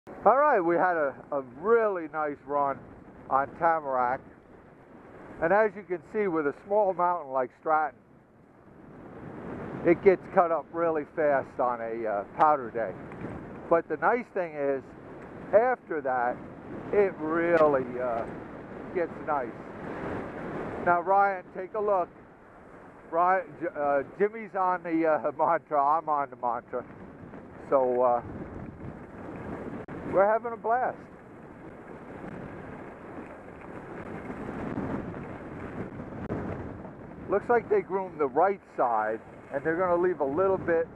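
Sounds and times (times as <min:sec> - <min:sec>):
rushing noise of skiing: 0:00.2 - 0:04.4, 0:05.1 - 0:08.0, 0:09.1 - 0:40.9.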